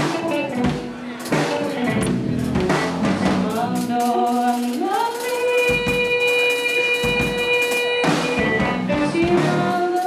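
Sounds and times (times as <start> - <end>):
drum hits: 0.0 - 3.8
live band: 0.0 - 10.0.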